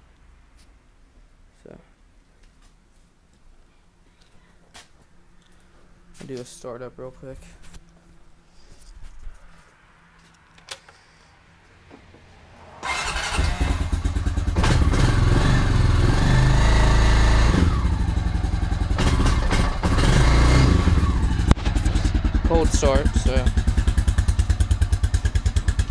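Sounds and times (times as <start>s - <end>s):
engine starting and running: 12.7s - 25.9s.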